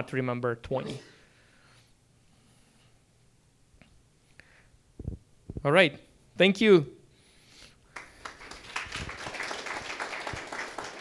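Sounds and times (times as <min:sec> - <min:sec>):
audience applauding: 0:07.9 - 0:11.0.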